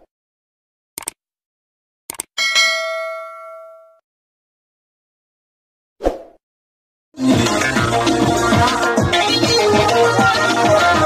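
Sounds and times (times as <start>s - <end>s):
notification bell ding: 2.4s - 4.0s.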